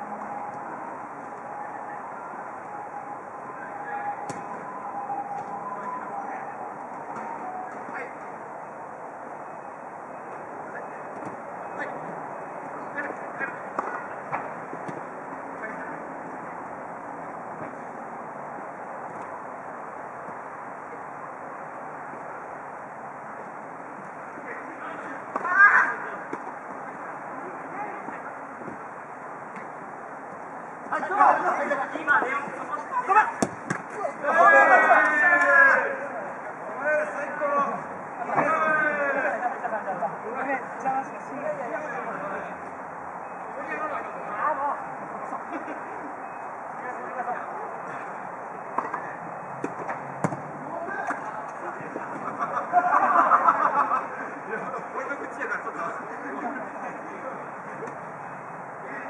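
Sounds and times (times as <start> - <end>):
players calling: 0.0 - 59.0
ball kick: 4.2 - 4.6, 33.4 - 34.0, 49.6 - 51.2
players shouting: 24.7 - 26.4, 30.9 - 39.9
ball being kicked: 49.6 - 50.5.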